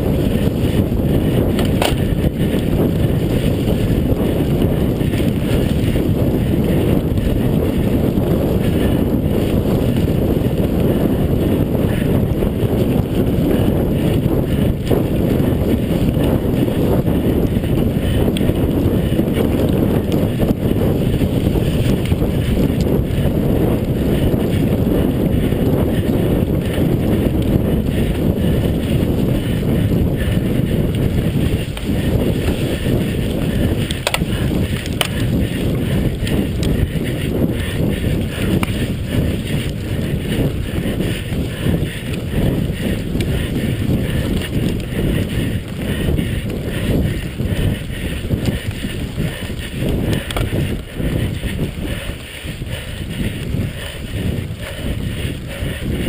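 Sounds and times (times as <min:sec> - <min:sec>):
bike knocking and rattling: 0:00.0 - 0:56.0
tyres rumbling on dirt trail: 0:00.0 - 0:56.0
wind buffeting microphone: 0:00.0 - 0:56.0.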